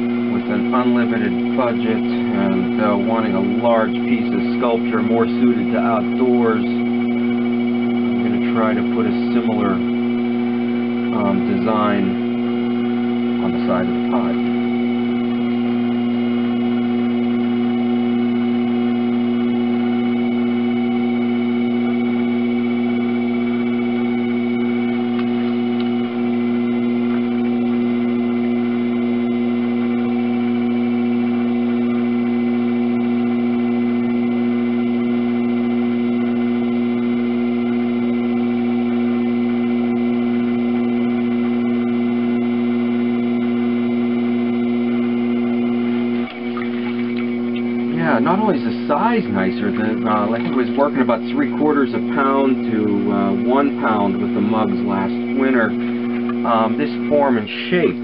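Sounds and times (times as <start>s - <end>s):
potter's wheel motor humming: 0.0s - 58.0s.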